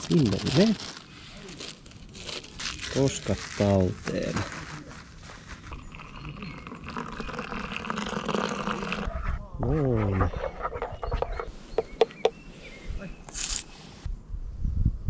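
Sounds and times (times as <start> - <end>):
hot water pouring into cup: 5.7 - 9.1.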